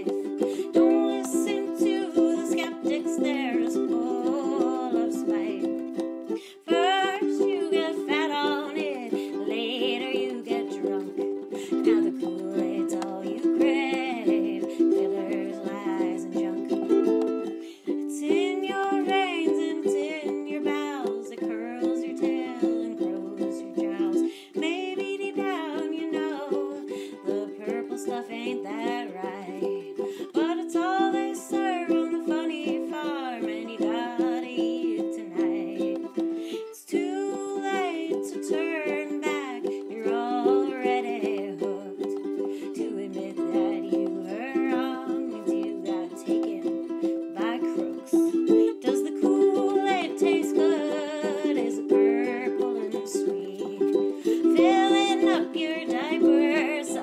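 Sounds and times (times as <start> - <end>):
ukulele strumming: 0.0 - 57.0
woman singing: 0.0 - 57.0.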